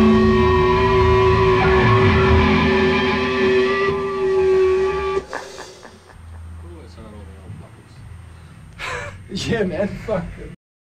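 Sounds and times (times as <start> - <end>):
low hum: 0.0 - 10.6.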